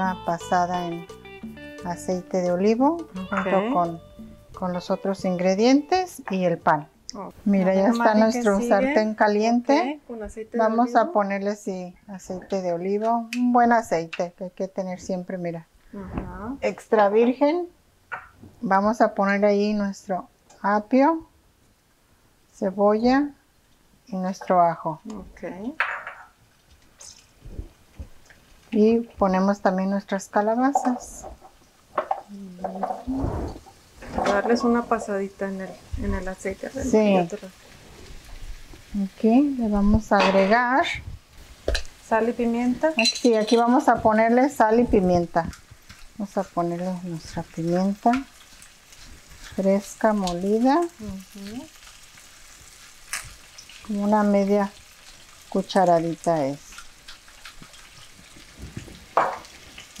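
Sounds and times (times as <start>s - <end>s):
vegetables sizzling in oil: 0.0s - 60.0s.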